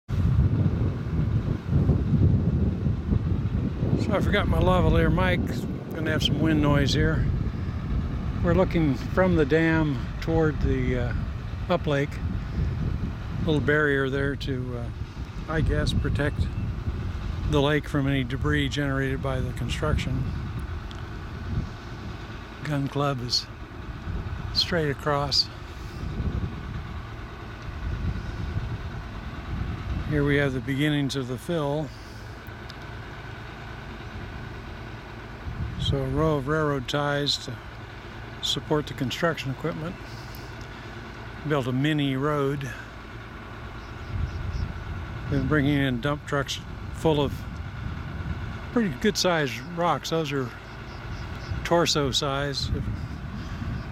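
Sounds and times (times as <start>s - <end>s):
wind buffeting microphone: 0.0s - 42.1s, 42.7s - 49.6s, 50.2s - 53.9s
construction machinery drone: 0.0s - 53.9s.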